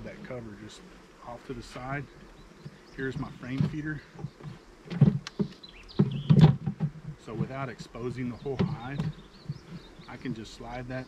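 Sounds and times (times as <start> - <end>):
wooden cover scraping: 1.6 - 10.7
knocks on wooden hive: 3.4 - 9.8.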